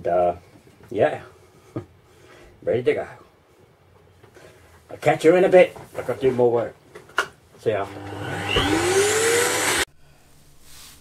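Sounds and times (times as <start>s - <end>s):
vacuum cleaner motor whining: 7.8s - 9.9s.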